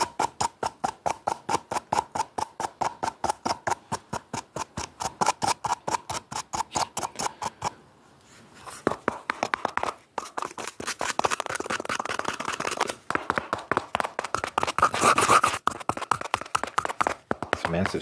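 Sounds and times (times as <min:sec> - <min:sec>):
scratching and tapping on cardboard: 0:00.0 - 0:07.8, 0:08.6 - 0:18.0.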